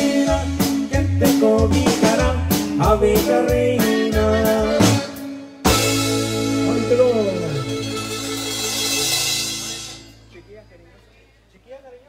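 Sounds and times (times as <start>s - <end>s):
band holding final chord: 5.6s - 10.9s
cymbal crash: 7.7s - 10.5s.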